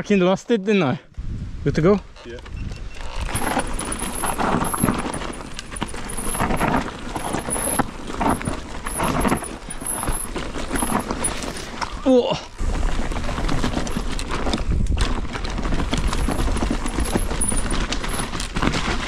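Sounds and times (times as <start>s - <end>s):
wind rumbling on microphone: 1.1s - 19.0s
bike tyres on loose dirt: 2.8s - 19.0s
bike rattling and knocking: 3.0s - 12.0s, 12.6s - 19.0s.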